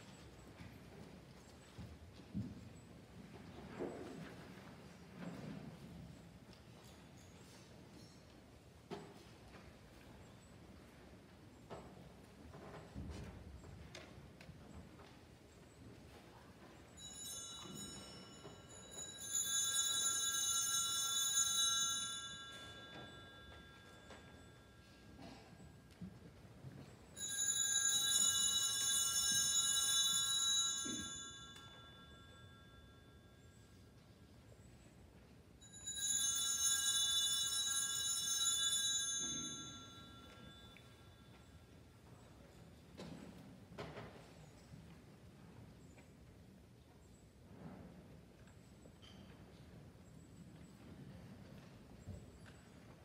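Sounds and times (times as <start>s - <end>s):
small bells ringing: 16.9s - 25.9s, 27.1s - 34.0s, 35.6s - 41.9s.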